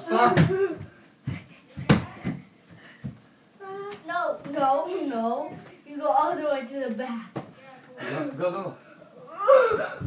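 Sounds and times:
ball bouncing on floor: 0.3s - 3.2s.

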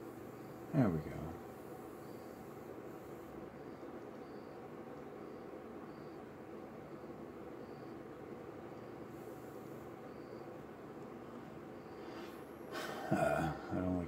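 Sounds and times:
cricket chirping: 0.0s - 14.0s
steady low hum: 0.0s - 14.0s.

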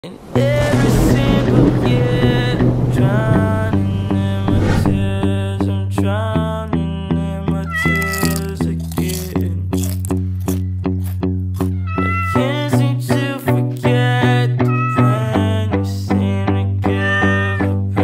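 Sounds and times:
kitten meowing: 7.6s - 8.5s, 11.6s - 12.6s, 14.6s - 15.2s, 16.9s - 17.7s.

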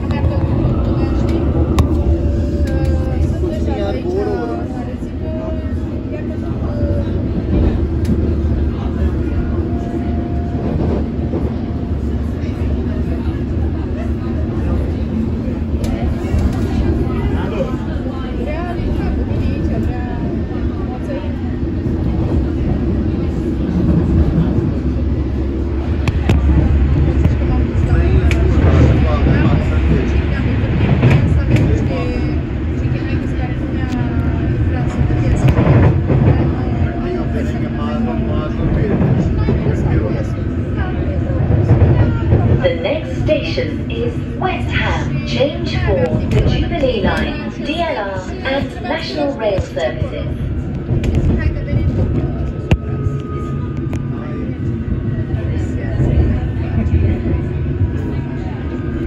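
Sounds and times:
underground train rumbling: 0.0s - 59.0s
voices: 0.0s - 59.0s.

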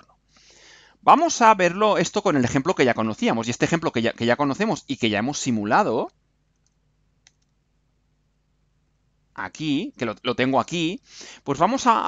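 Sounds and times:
computer mouse click: 6.5s - 7.6s.

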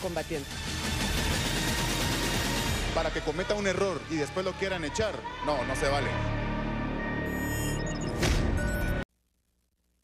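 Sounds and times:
background music: 0.0s - 9.0s.

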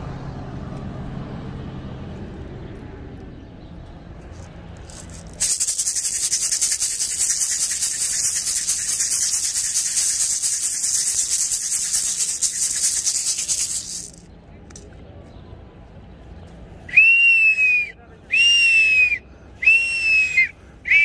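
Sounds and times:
hand rattle shaken rapidly: 4.4s - 14.9s.

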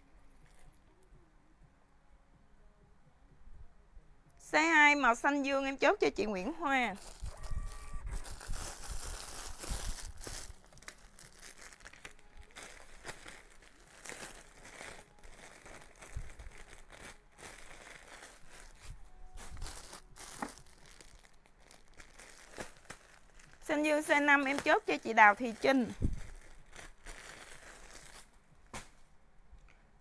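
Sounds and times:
plastic bag crinkling: 6.9s - 28.4s.

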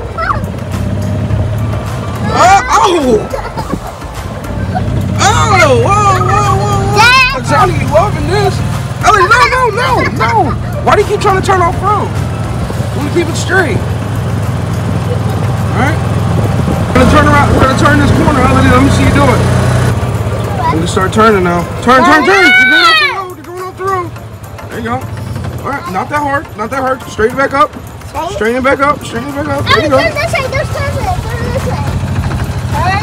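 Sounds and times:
faint background music: 0.0s - 33.0s
golf cart rumbling: 0.0s - 33.0s.

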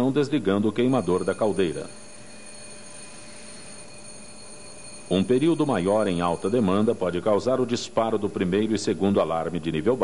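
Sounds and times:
faint hum tones: 0.0s - 10.0s.

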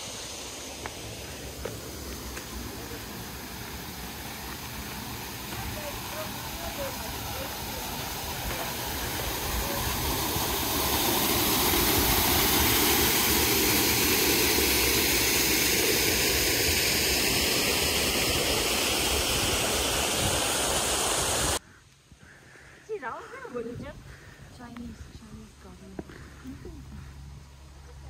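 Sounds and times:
waterfall splashing into pool: 0.0s - 21.6s.

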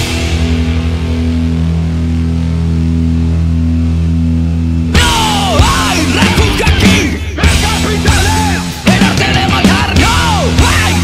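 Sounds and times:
rock band playing: 0.0s - 11.0s
low pulsing drone: 0.2s - 6.1s.

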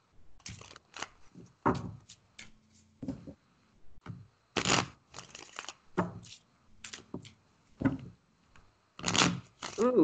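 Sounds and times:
cards being handled: 0.4s - 2.9s, 4.6s - 7.4s, 9.1s - 10.0s
woman speaking: 9.8s - 10.0s.

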